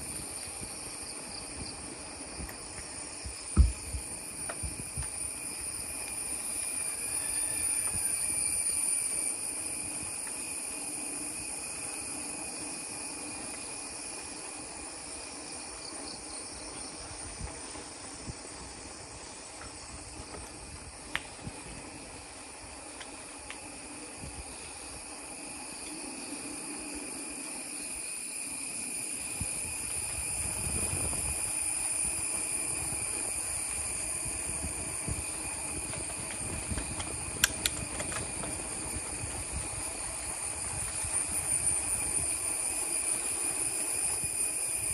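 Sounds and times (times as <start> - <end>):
bicycle tyres rolling over pavers: 0.0 - 44.9
high-pitched insect calls: 0.0 - 44.9
sharp clicks: 37.0 - 38.3.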